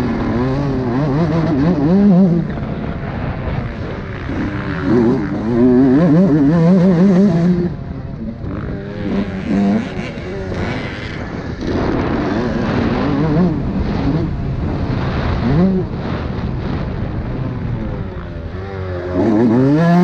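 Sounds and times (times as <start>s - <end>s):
motocross bike engine revving: 0.0s - 20.0s.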